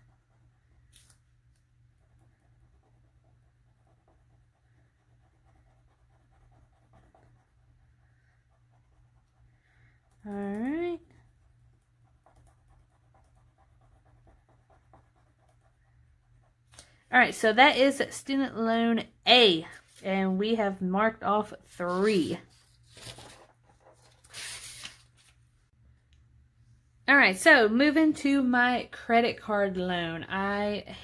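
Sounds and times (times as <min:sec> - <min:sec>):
crayon scratching on paper: 0:02.0 - 0:16.6.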